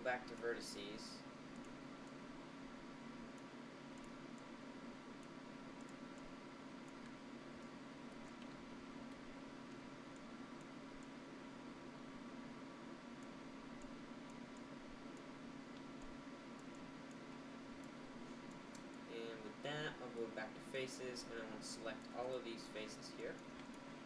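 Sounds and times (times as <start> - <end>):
faint room hum and hiss: 0.0 - 24.0
computer mouse clicks: 1.5 - 2.2, 3.3 - 4.5, 5.2 - 11.2, 13.2 - 17.2.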